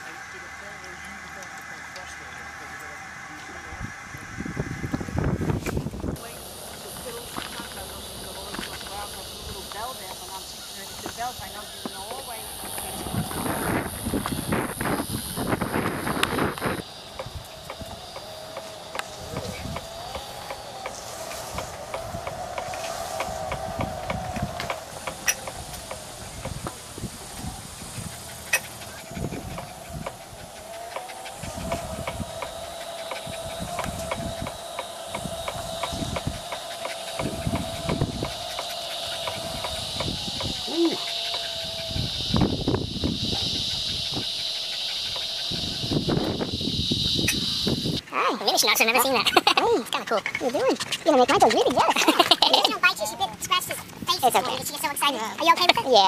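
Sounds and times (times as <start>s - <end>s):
wheelchair motor whining: 0.0s - 48.0s
high-pitched buzz: 0.0s - 49.4s.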